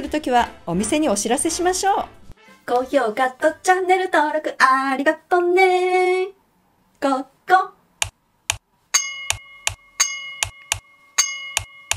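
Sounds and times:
beat of clicks and thumps: 8.0s - 8.7s, 9.3s - 9.8s, 10.4s - 10.9s
bell-like chime: 9.0s - 11.9s.

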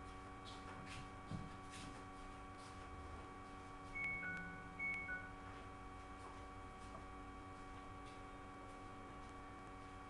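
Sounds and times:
low steady hum: 0.0s - 10.0s
two-note chime: 4.0s - 5.4s.

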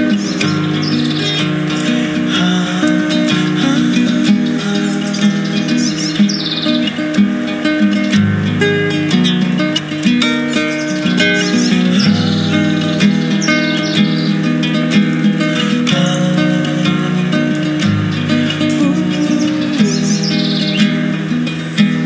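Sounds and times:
acoustic guitar chords: 0.0s - 22.0s
birds chirping: 0.0s - 22.0s.

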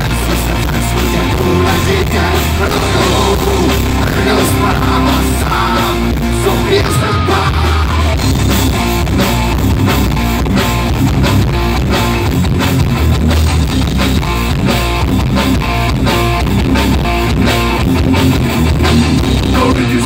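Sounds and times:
bass guitar: 0.0s - 20.0s
drum kit: 0.0s - 20.0s
electric guitar: 0.0s - 20.0s.

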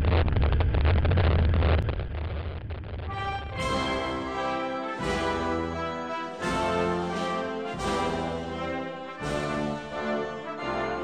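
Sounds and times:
snowmobile engine drone: 0.0s - 7.0s.

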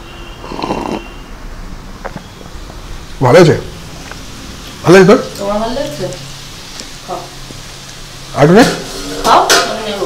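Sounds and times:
slurp of smoothie: 0.4s - 1.1s.

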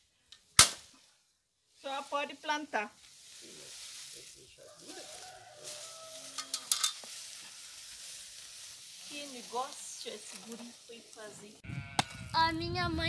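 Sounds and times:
machete chopping stem: 0.6s - 0.9s.

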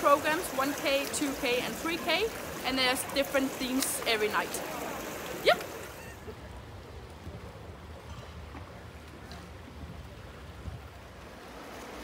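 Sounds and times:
wind rumble on microphone: 6.3s - 12.0s.

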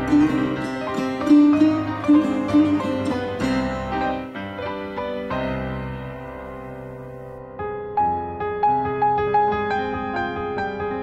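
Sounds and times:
plucked setar notes: 0.0s - 7.2s
piano chords: 0.0s - 11.0s.

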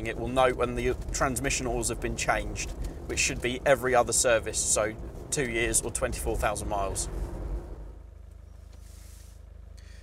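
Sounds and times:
engine running low rumble: 0.0s - 10.0s.

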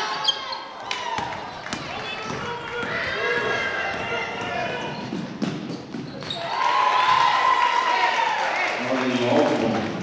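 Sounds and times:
players and spectators calling out: 0.0s - 5.3s
basketball bouncing on hardwood floor: 3.8s - 6.3s.

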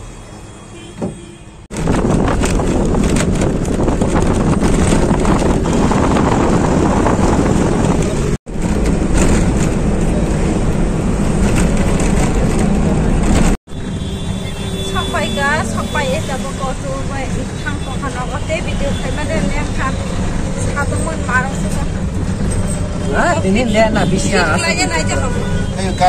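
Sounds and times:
bus engine and road rumble: 0.0s - 26.0s
rickshaw engine hum and rattle: 0.0s - 26.0s
people talking: 15.0s - 20.0s, 23.1s - 26.0s.

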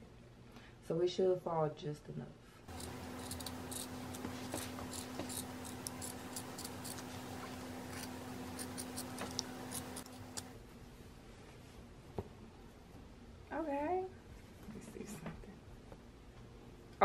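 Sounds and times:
low steady hum: 2.4s - 17.0s
scissors snipping fabric: 2.7s - 10.5s.

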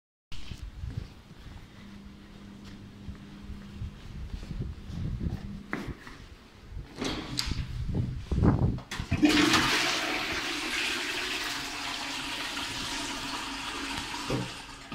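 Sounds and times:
toilet flushing: 8.9s - 14.9s.

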